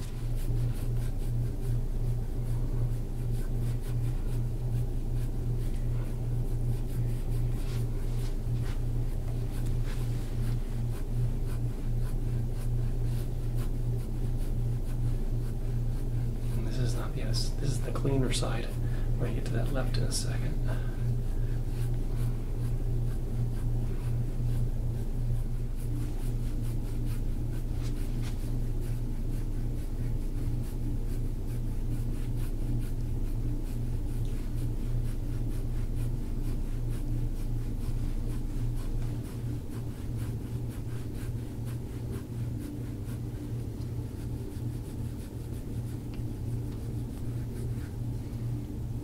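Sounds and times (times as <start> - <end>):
low hum: 0.0 - 49.0
tool scraping skin: 21.3 - 48.7.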